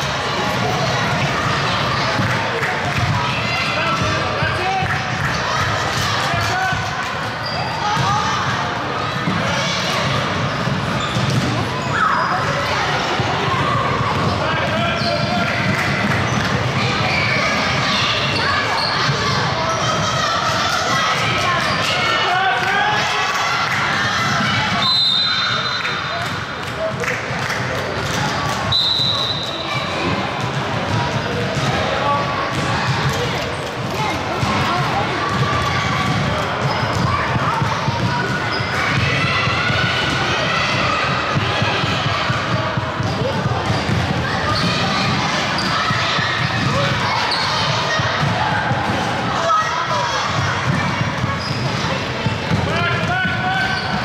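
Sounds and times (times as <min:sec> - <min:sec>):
basketballs bouncing on wood floor: 0:32.5 - 0:33.4, 0:34.3 - 0:47.0, 0:50.3 - 0:53.1.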